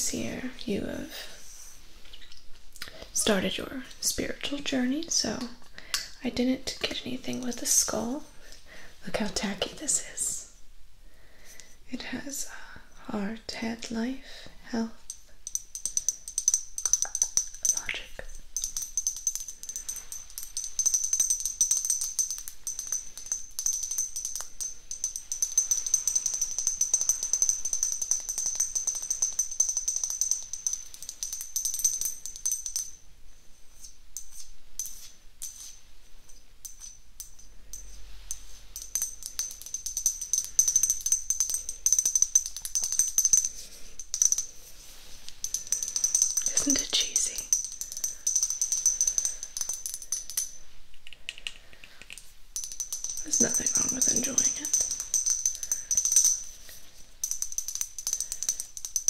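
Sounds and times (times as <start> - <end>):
fingernails tapping on ornament: 15.1 - 32.9, 36.6 - 44.5, 45.3 - 56.6, 57.2 - 59.0.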